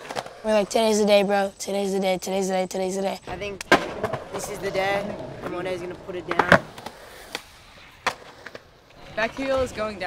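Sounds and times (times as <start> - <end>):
skateboard rolling on concrete: 0.0 - 10.0
sharp skateboard clacks: 3.4 - 9.6.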